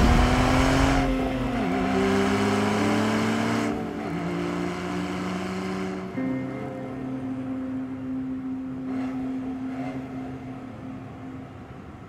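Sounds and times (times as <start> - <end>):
car engine running: 0.0 - 3.7.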